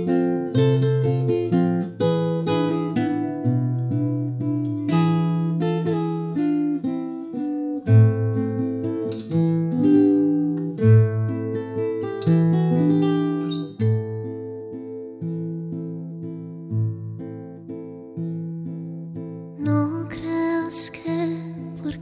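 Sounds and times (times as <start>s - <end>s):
acoustic guitar playing: 0.0s - 22.0s.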